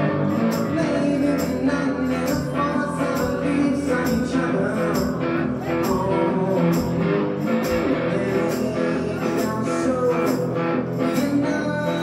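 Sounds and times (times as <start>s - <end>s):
amplified guitar: 0.0s - 12.0s
foot-played percussion with cymbal: 0.3s - 12.0s.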